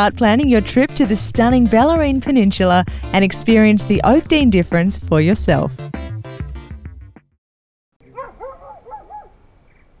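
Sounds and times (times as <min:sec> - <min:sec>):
crickets chirping: 0:08.0 - 0:10.0
owl hooting: 0:08.0 - 0:10.0.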